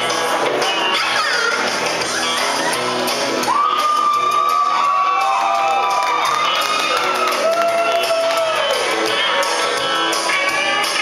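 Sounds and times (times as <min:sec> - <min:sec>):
country karaoke backing music: 0:00.0 - 0:11.0
crowd whooping and cheering: 0:00.4 - 0:10.9.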